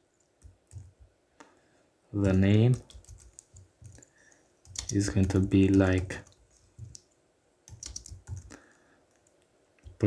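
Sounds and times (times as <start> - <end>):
keyboard keystrokes: 0.4 - 0.9, 2.2 - 4.0, 4.6 - 7.0, 7.7 - 8.5.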